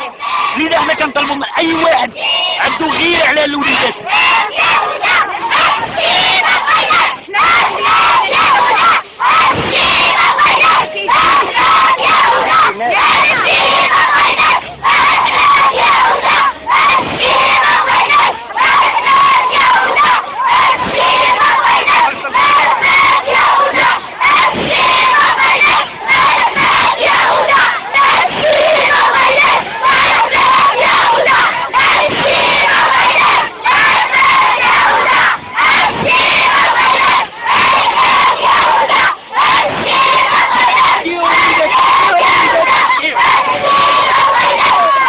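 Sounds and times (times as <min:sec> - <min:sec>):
children shouting and chanting: 0:00.0 - 0:45.0.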